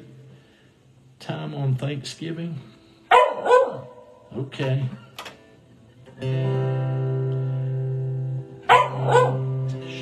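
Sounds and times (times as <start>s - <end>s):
dog barking: 3.1s - 4.2s, 8.7s - 9.5s.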